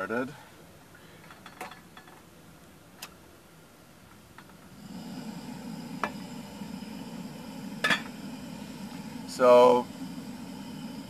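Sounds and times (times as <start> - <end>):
gas burner hissing: 4.2 - 11.0.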